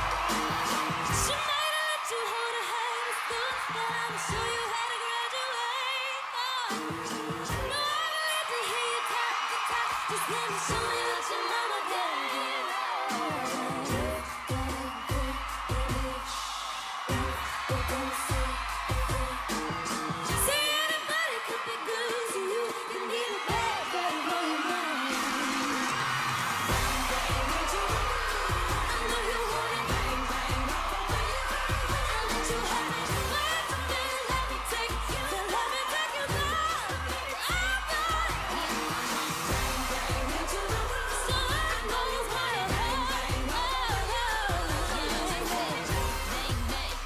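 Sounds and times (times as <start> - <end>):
pulsing bass beat: 0.0 - 1.3, 13.9 - 16.4, 17.1 - 20.6, 26.7 - 47.0
dance track: 0.0 - 47.0
woman singing into microphone: 1.1 - 16.4, 17.1 - 26.0, 26.7 - 47.0.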